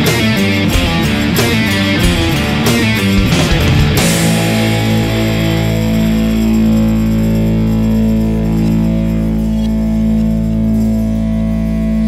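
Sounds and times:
cymbal wash: 0.0s - 11.9s
distorted guitar and bass drone: 0.0s - 12.0s.

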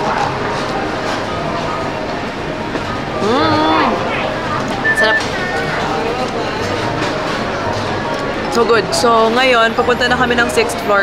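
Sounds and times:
indistinct crowd chatter: 0.0s - 11.0s.

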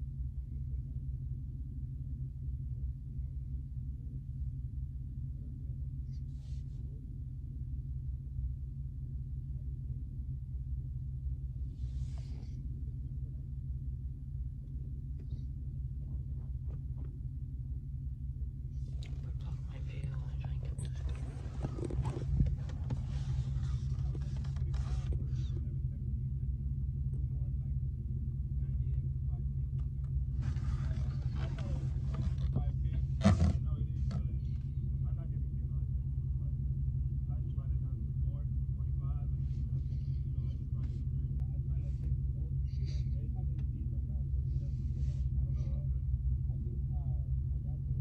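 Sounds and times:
car engine droning: 0.0s - 48.0s.

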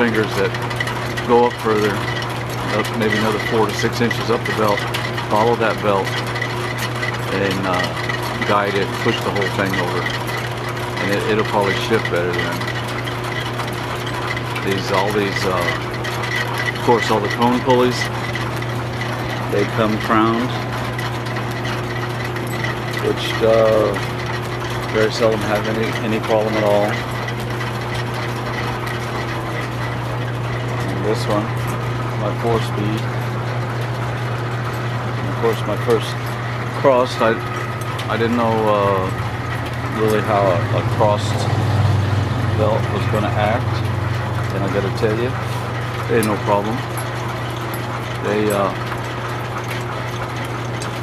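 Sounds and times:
line shaft belts humming: 0.0s - 51.0s.

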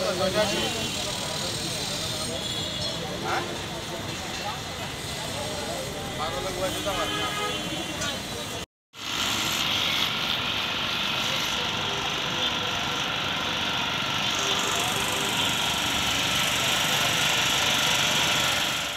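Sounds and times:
portable generator engine running: 9.0s - 18.9s.

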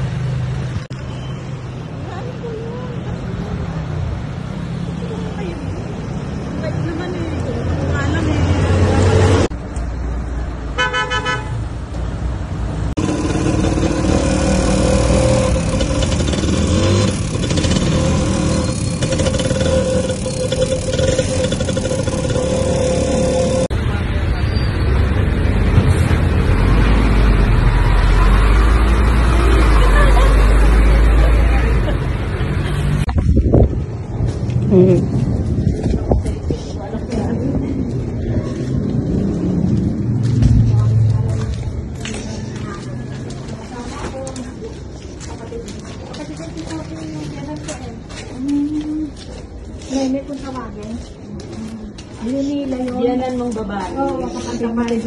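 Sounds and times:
motorcycle engine and road noise: 0.0s - 54.0s
traffic noise: 0.0s - 55.0s
vehicle horn: 10.8s - 11.6s.

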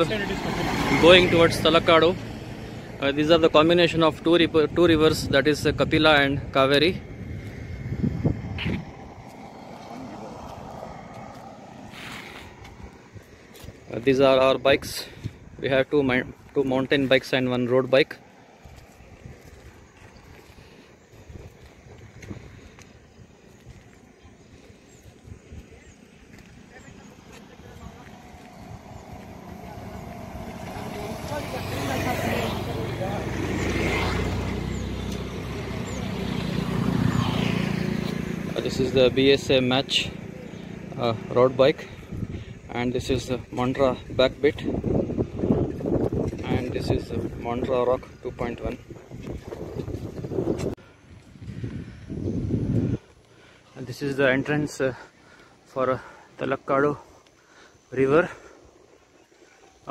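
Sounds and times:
faint outdoor rumble: 0.0s - 59.9s
wind buffeting microphone: 2.3s - 17.2s, 18.2s - 39.4s, 40.1s - 53.6s
hiss of passing vehicle: 8.3s - 13.2s
vehicle engine running: 26.0s - 42.6s.

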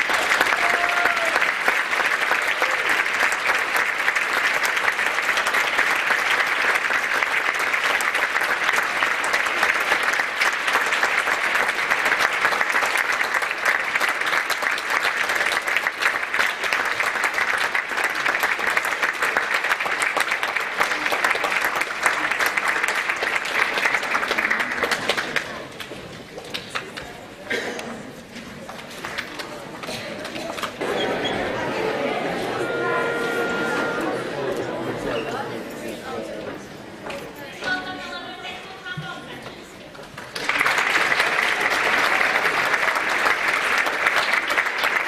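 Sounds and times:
audience applauding: 0.0s - 26.8s, 28.7s - 35.5s, 40.0s - 45.0s.

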